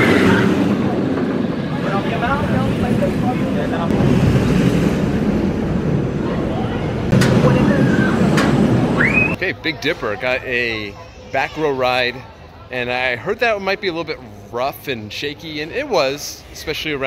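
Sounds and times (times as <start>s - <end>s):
roller coaster rolling on track: 0.0s - 10.0s.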